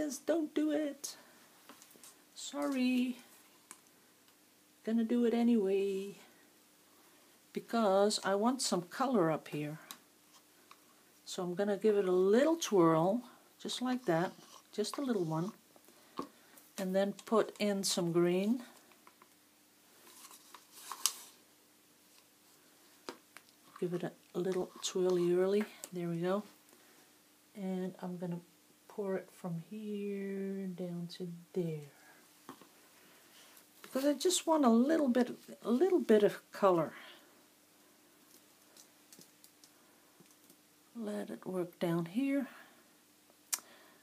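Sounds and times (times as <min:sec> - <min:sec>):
faint steady hum: 0:00.0 - 0:44.0.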